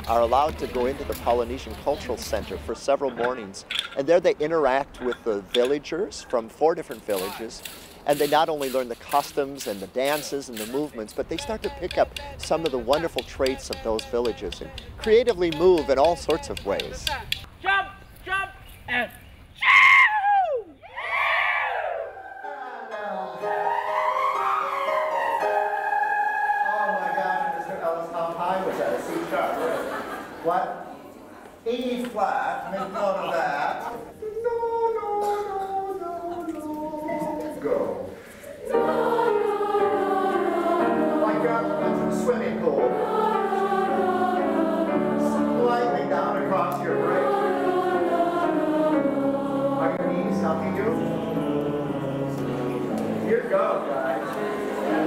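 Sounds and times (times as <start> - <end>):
children's choir singing: 10.6 - 17.1, 22.1 - 30.4, 34.9 - 55.0
high whoop sliding down: 23.4 - 27.8.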